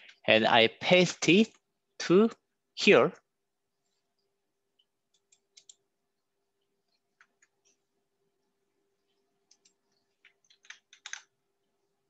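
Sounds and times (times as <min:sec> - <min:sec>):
faint steady hum: 0:00.0 - 0:12.0
computer clicks: 0:04.8 - 0:05.8, 0:09.4 - 0:11.4.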